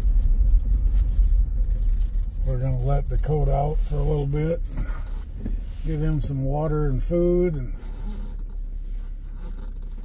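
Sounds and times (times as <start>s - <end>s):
faint rustling and scraping: 0.0s - 10.0s
low hum inside car cabin: 0.0s - 10.0s.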